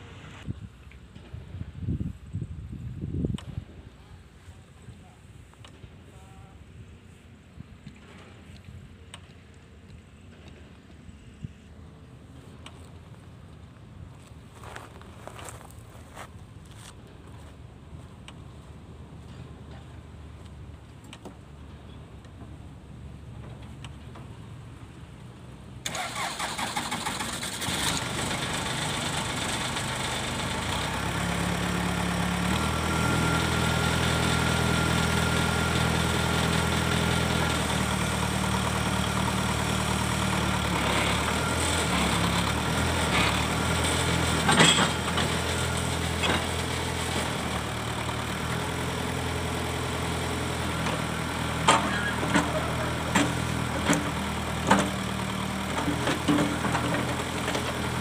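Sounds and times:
diesel engine idling: 24.6 - 58.0
diesel engine cranking: 25.8 - 58.0.

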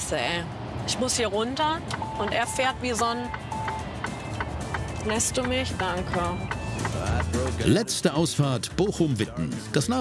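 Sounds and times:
truck rumble inside cab: 0.1 - 7.8
synth music with light tick: 1.6 - 8.7.

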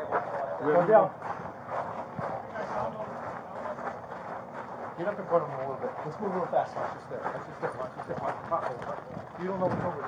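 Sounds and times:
faint indistinct voices: 0.0 - 10.0
footsteps: 0.0 - 10.0.

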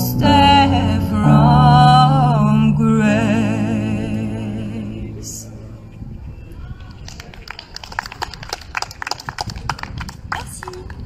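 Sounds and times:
sparse applause: 6.6 - 11.0.

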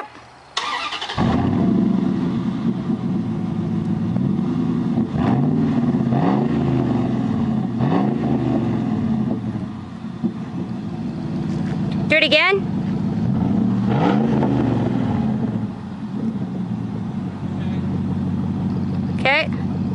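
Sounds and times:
pickup truck engine revving: 0.6 - 19.9.

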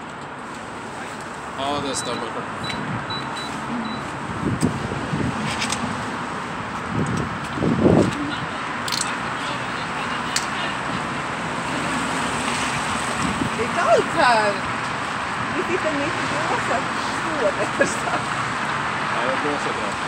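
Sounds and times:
traffic hum: 0.0 - 20.0
sharp clicks: 8.8 - 9.2.

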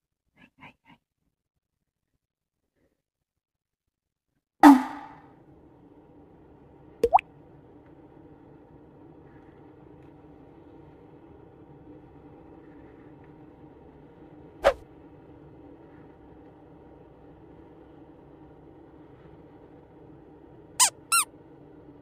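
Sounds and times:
faint steady hum: 4.6 - 22.0.

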